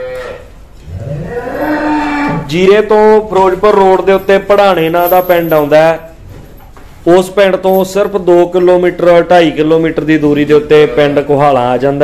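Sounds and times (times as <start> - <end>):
water buffalo mooing: 0.0 - 2.5.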